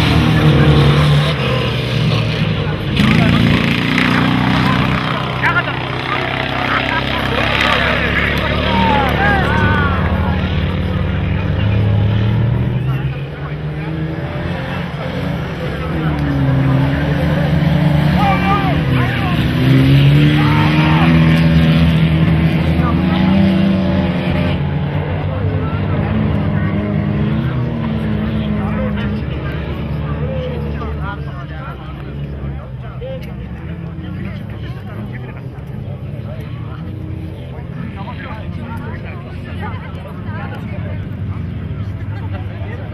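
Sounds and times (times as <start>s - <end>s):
people's voices: 0.0s - 42.9s
race vehicle engines revving: 0.0s - 42.9s.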